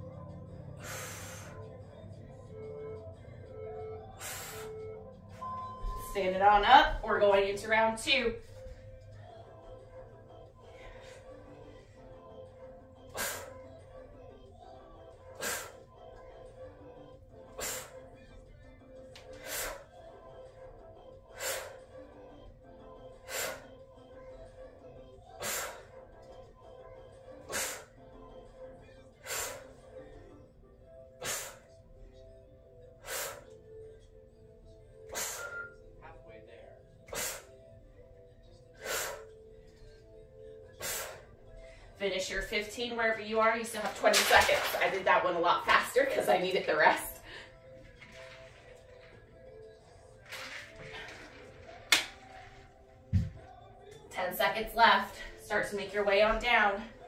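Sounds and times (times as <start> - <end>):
faint music: 0.0 - 57.0.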